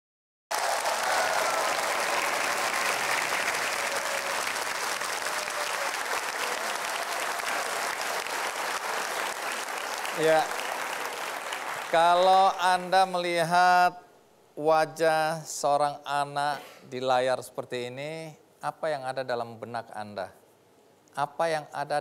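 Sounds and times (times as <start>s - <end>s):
audience applauding: 0.5s - 12.6s.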